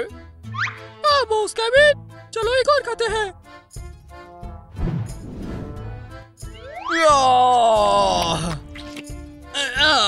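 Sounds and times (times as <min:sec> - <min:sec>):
man groaning: 0:07.0 - 0:08.6.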